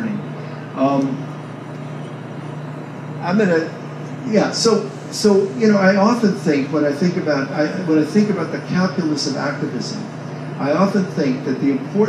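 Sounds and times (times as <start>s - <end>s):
room background noise: 0.0s - 12.0s
steady low hum: 0.0s - 12.0s.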